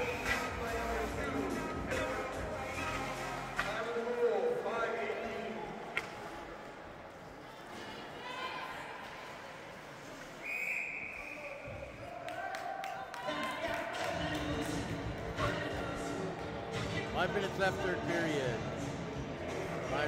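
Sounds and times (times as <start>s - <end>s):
voices in the stands: 0.0s - 20.0s
referee's whistle: 10.4s - 12.0s.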